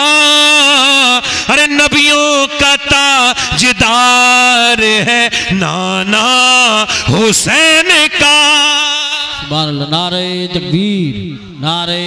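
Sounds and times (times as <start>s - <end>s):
man singing chant-like melody: 0.0s - 12.0s.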